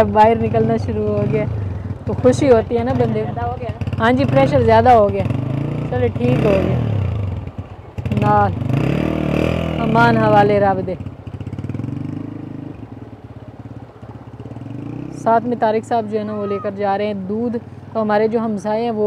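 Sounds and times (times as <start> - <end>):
people talking: 0.0 - 1.5, 2.1 - 5.3, 5.9 - 6.8, 8.2 - 8.5, 9.8 - 11.0, 15.2 - 19.0
small motorcycle engine revving: 0.0 - 16.8.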